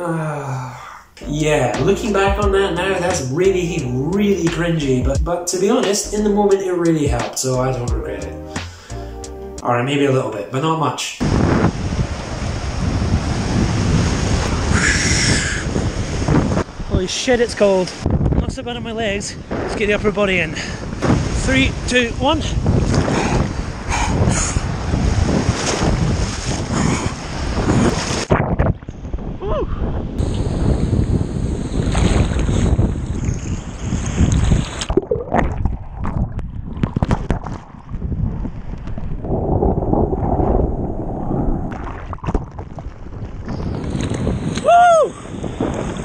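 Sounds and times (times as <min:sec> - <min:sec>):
wind buffeting microphone: 0:11.2 - 0:46.0
sea water splashing: 0:19.5 - 0:28.7, 0:31.7 - 0:46.0.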